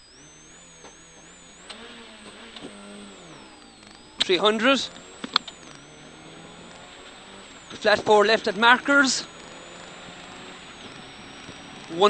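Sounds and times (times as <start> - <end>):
car engine accelerating: 0.0 - 12.0
sharp clicks: 0.0 - 12.0
thin high whine: 0.0 - 12.0.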